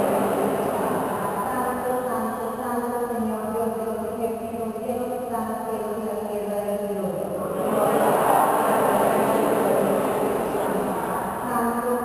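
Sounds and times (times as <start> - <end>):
congregation chanting in unison: 0.0 - 1.5, 7.4 - 11.5.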